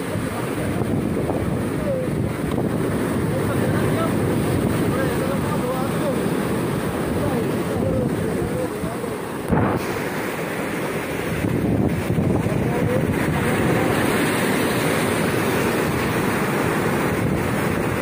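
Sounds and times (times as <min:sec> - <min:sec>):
surf breaking over rocks: 0:00.0 - 0:18.0
wind buffeting microphone: 0:00.0 - 0:18.0.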